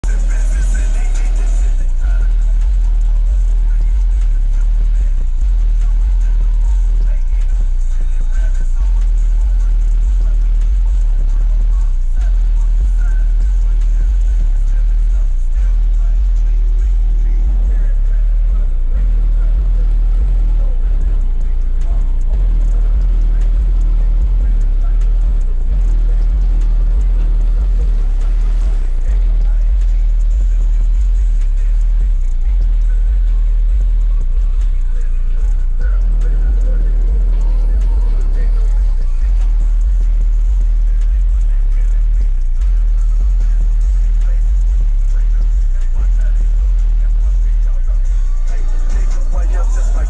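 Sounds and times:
deep bass from car subwoofers: 0:00.0 - 0:50.0
quiet voice: 0:00.0 - 0:50.0.

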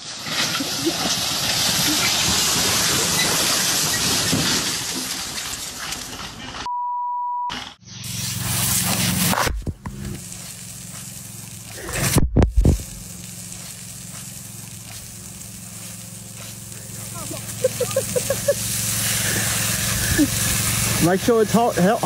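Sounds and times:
water spraying under pressure: 0:00.0 - 0:06.6, 0:07.8 - 0:22.0
steady low hum: 0:07.8 - 0:21.2.

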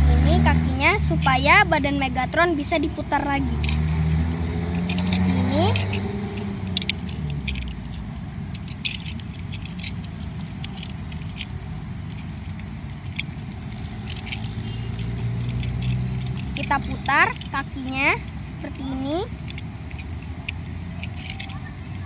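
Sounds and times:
low background rumble: 0:00.0 - 0:22.0
plastic toy clicks and rattles: 0:00.2 - 0:22.0.

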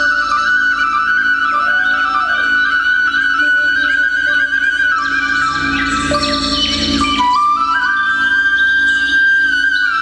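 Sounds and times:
flute melody: 0:00.0 - 0:10.0
steady drone: 0:00.5 - 0:07.7.

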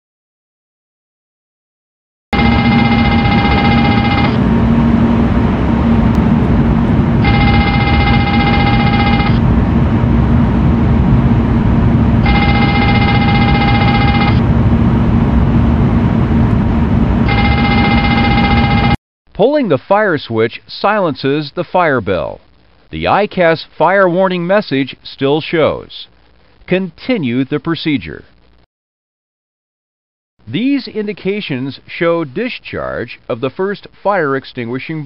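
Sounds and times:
fire warning bell ringing: 0:02.4 - 0:04.4, 0:07.2 - 0:09.4, 0:12.2 - 0:14.4, 0:17.3 - 0:19.0
cockpit background hum: 0:02.4 - 0:19.0, 0:19.8 - 0:28.6.

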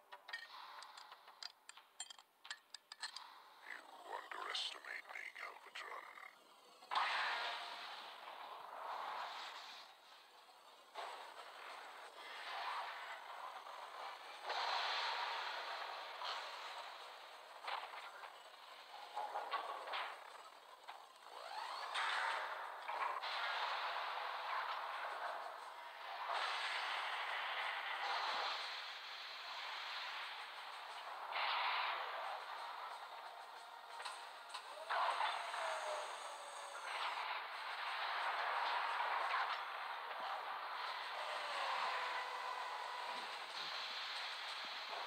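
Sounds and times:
grinding clattering metal parts: 0:00.2 - 0:03.3.

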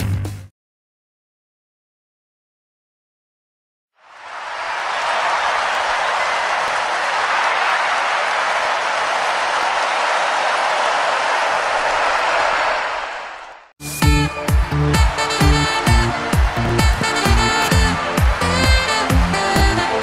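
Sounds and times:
crowd applause: 0:04.0 - 0:20.0.

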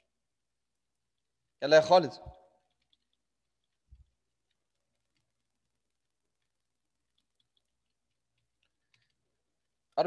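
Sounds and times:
person speaking: 0:01.6 - 0:03.2.

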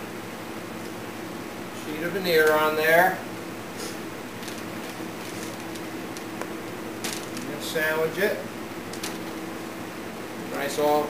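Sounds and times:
window fan hissing: 0:00.0 - 0:11.0.

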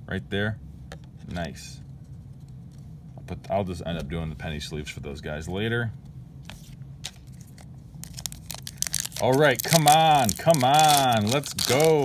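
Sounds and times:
foil wrapper crinkling: 0:07.1 - 0:12.0.

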